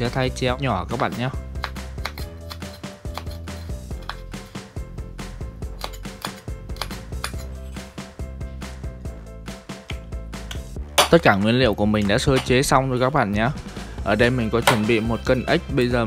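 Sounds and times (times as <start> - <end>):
background music: 0.0 - 16.0
knife tapping on wooden board: 1.6 - 2.6.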